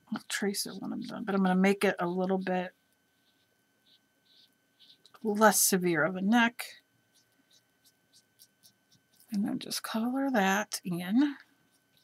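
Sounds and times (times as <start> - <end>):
faint high-pitched hum: 0.0 - 12.0.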